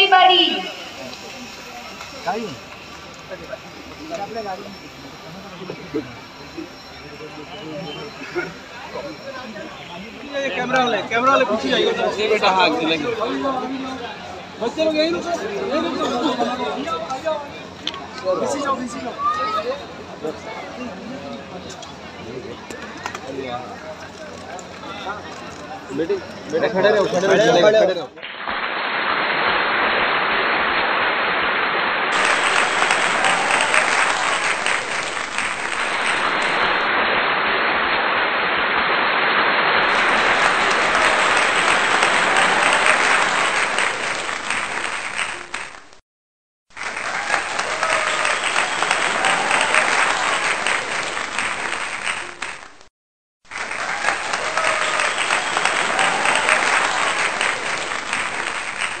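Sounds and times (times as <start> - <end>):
crowd applauding: 0.0 - 27.9, 32.1 - 36.9, 39.8 - 46.0, 46.7 - 52.9, 53.5 - 59.0.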